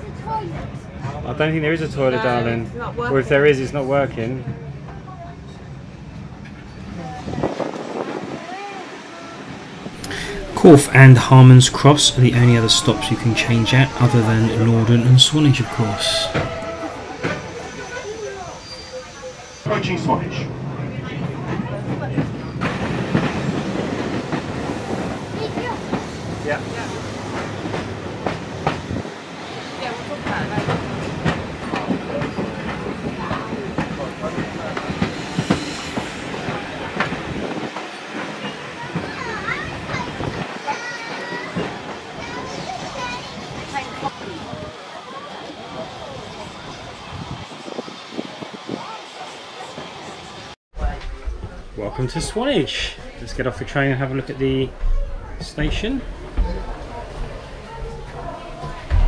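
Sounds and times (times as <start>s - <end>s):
passengers' voices: 0.0s - 59.0s
train wheels clattering over rails: 16.2s - 50.5s.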